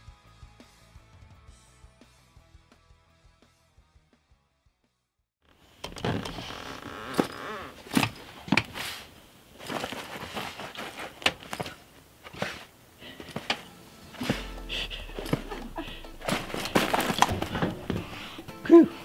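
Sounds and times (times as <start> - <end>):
rustling: 5.6 - 19.0
knocks and clatters: 13.3 - 18.7.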